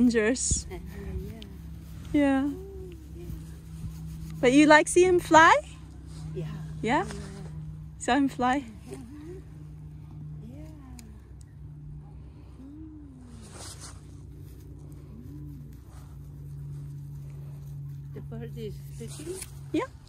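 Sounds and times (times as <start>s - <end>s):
soft hummed vocal sounds: 0.0s - 20.0s
steady low hum: 0.0s - 20.0s.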